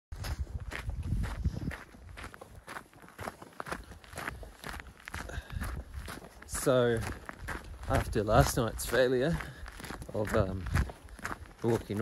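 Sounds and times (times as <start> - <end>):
footsteps hiking uphill: 0.1 - 12.0.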